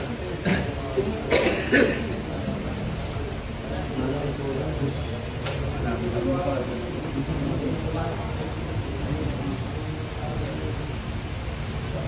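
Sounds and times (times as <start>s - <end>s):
low talk: 0.0s - 12.0s
person coughing: 0.4s - 2.2s.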